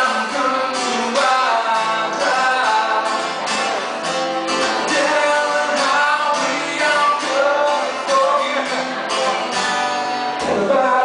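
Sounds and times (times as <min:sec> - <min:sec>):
man singing: 0:00.0 - 0:09.6, 0:10.2 - 0:11.0
strummed acoustic guitar: 0:00.0 - 0:11.0.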